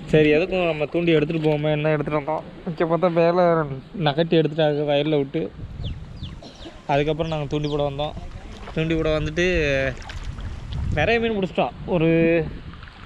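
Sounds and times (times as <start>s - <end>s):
water moving around waders: 6.3s - 11.0s.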